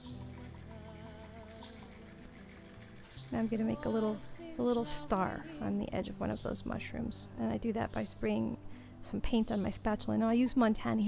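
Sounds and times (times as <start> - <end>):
soft background music: 0.0 - 11.0.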